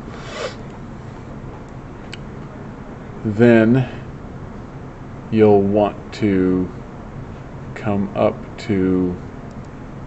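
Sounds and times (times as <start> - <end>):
rasping breath-like noise: 0.0 - 0.6
steady low background hum: 0.0 - 10.0.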